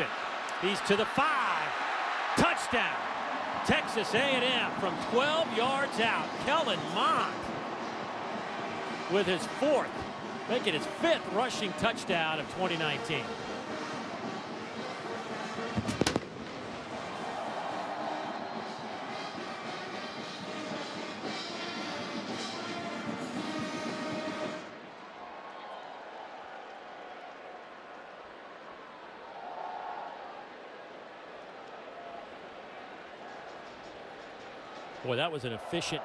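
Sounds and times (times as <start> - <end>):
stadium crowd noise: 0.0 - 36.0.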